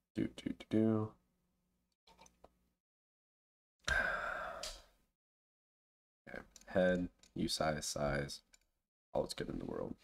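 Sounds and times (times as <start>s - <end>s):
person sighing: 3.8s - 4.9s.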